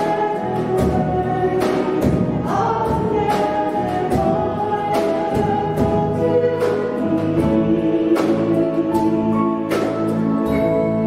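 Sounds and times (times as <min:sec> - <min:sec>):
piano: 0:00.0 - 0:11.0
voices singing together: 0:00.0 - 0:11.0.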